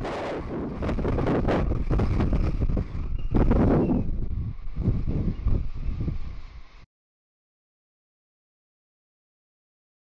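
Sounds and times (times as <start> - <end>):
rocket engines rumbling: 0.0 - 6.8.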